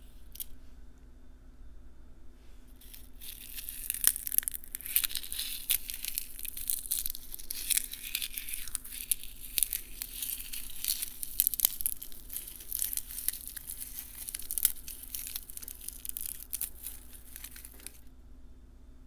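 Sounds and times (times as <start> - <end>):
dried petals crackling: 2.7 - 18.1.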